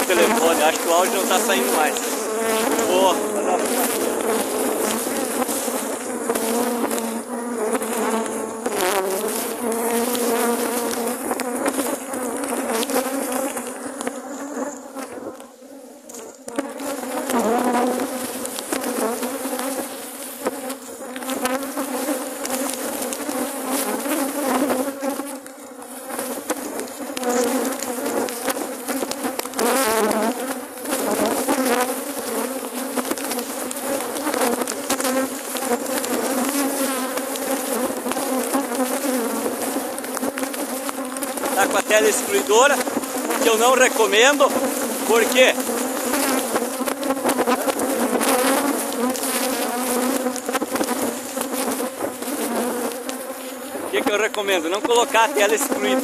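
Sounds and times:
honeybees buzzing loudly: 0.0 - 56.0.

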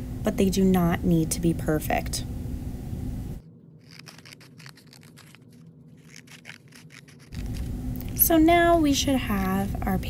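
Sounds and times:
scissors cutting paper: 3.8 - 7.7.

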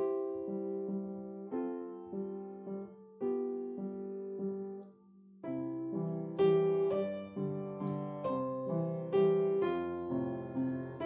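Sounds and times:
piano playing chords and melody: 0.0 - 11.0.

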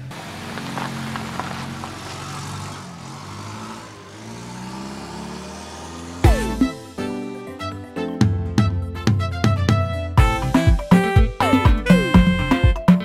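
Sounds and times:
tyre noise: 0.0 - 6.6
van engine running: 0.0 - 7.1
music: 6.2 - 13.0.

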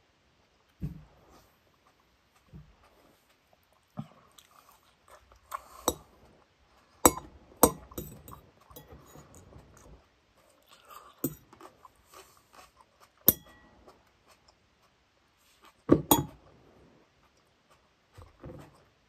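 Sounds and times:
person chewing salad: 1.3 - 15.9.

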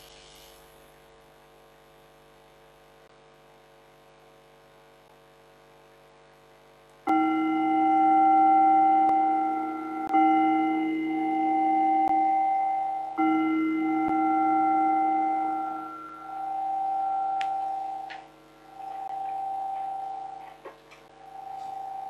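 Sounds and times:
singing bowl ringing: 7.1 - 22.0.

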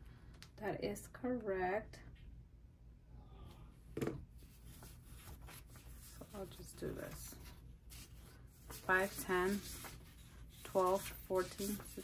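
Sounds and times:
paper bills rustling: 4.7 - 12.0.

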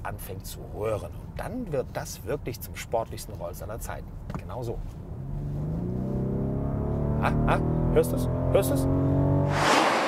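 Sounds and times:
car engine accelerating: 4.9 - 10.0.

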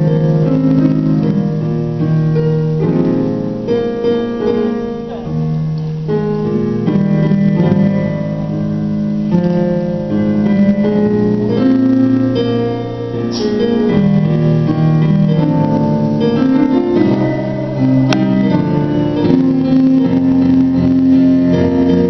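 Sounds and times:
slow keyboard chords: 0.0 - 22.0.

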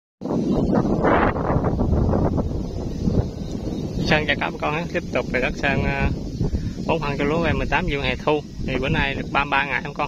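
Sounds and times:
wind buffeting microphone: 0.2 - 10.0.

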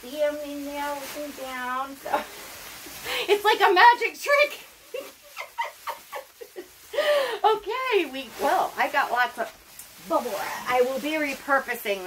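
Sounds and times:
bubble wrap rustling and squeaking: 0.0 - 12.0.

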